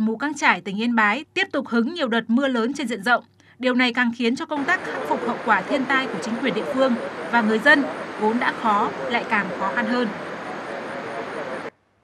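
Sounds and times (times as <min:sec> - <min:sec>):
traffic noise: 0:04.4 - 0:11.8.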